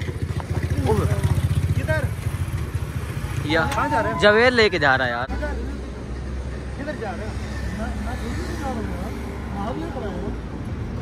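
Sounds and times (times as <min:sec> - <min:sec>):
low rumble of road traffic: 0:00.0 - 0:11.0
men talking: 0:03.3 - 0:10.4.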